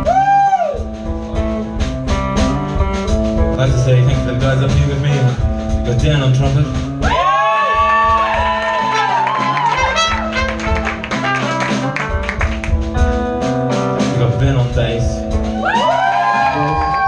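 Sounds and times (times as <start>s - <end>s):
blues band playing: 0.0s - 17.0s
trumpet bending held notes: 8.8s - 12.2s.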